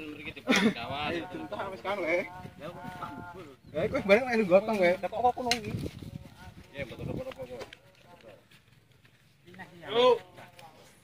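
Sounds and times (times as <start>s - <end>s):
men talking indistinctly: 0.0s - 8.6s.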